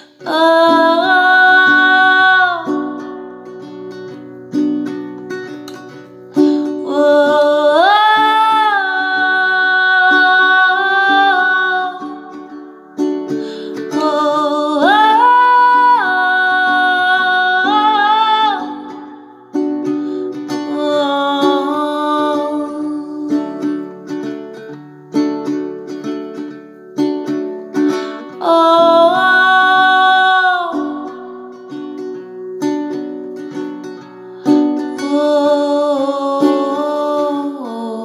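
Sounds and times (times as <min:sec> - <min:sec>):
woman singing wordless notes: 0:00.0 - 0:03.6, 0:06.5 - 0:19.4, 0:20.3 - 0:24.0, 0:28.2 - 0:32.0, 0:34.8 - 0:38.0
plucked acoustic guitar: 0:00.0 - 0:36.9.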